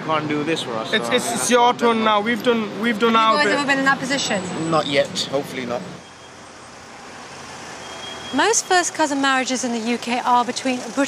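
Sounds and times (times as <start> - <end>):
street traffic rushing past: 0.0 - 11.0.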